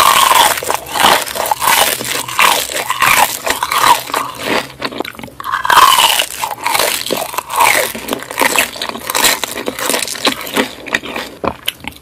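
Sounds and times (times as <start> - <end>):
crunching of fried food: 0.0 - 12.0.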